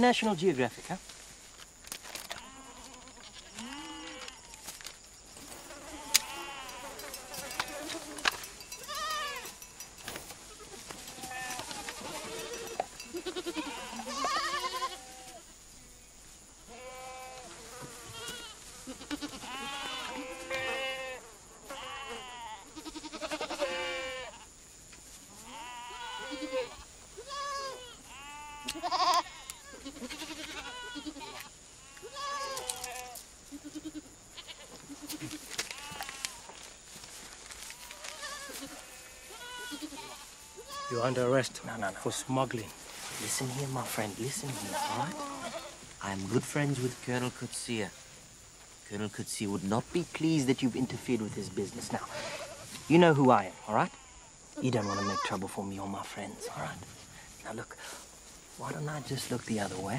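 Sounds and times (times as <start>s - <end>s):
goats bleating: 2.3s - 4.7s, 5.6s - 9.6s, 10.4s - 15.4s, 16.7s - 24.5s, 25.3s - 36.6s, 37.6s - 41.3s, 43.9s - 45.9s, 51.9s - 55.5s.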